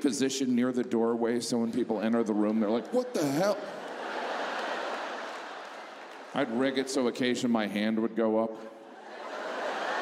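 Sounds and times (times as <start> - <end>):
audience laughing: 2.4 - 6.0, 8.9 - 10.0
audience clapping: 3.5 - 7.1.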